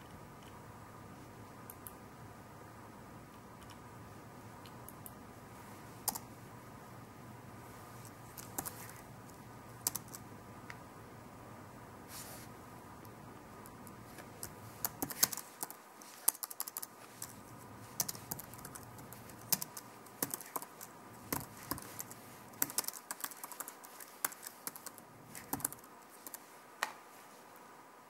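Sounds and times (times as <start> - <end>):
faint steady hum: 0.0 - 28.0.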